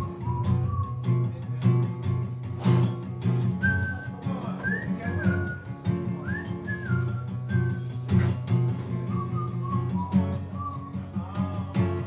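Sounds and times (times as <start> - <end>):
person whistling a melody: 0.0 - 1.4, 3.6 - 8.2, 8.9 - 11.6
strummed acoustic guitar: 0.0 - 12.0.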